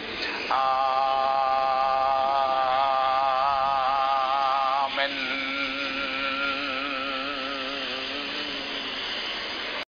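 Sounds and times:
long chanted note: 0:00.5 - 0:08.5.

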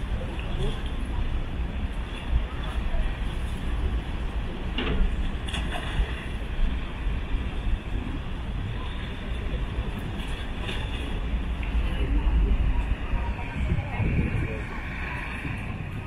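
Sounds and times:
faint sounds from people: 0:00.0 - 0:03.7, 0:08.0 - 0:16.0
wind buffeting microphone: 0:00.0 - 0:16.0.

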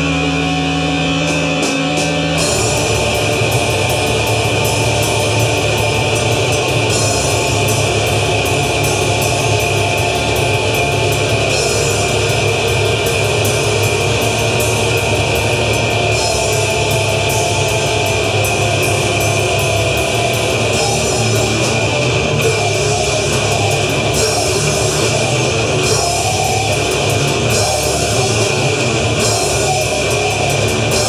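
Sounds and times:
drum kit: 0:00.0 - 0:31.0
electric guitars: 0:00.0 - 0:31.0.

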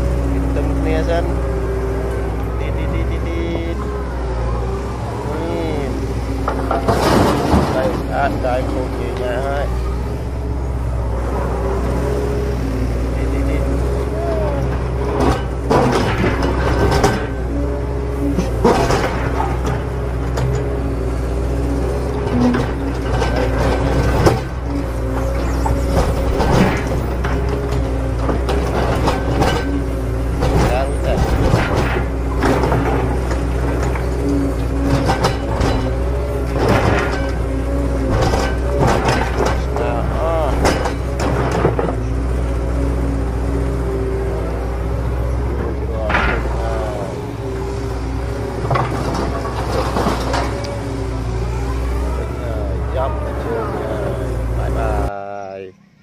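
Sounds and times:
indistinct voices: 0:00.0 - 0:56.0
steady tones: 0:00.0 - 0:56.0.

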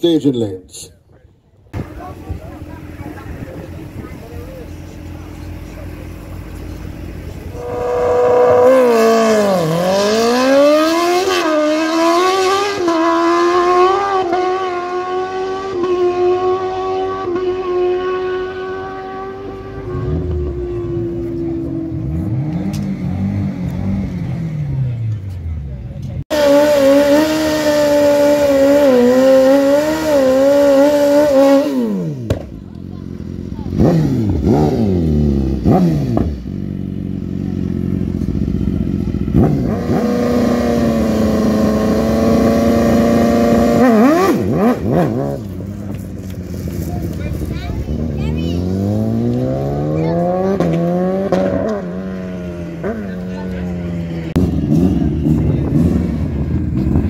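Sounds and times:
distant motorcycle engine passing: 0:01.8 - 0:57.0
motorcycle engine revving: 0:01.8 - 0:57.0.

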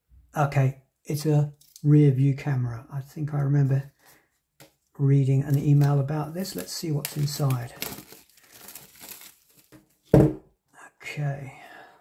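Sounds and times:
plastic film crinkling: 0:05.5 - 0:10.1.

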